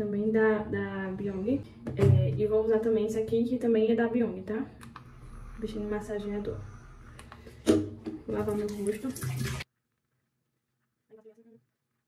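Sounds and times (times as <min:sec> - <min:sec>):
woman speaking: 0:00.0 - 0:04.8, 0:05.6 - 0:06.8, 0:08.3 - 0:09.6
running tap water: 0:08.2 - 0:09.7.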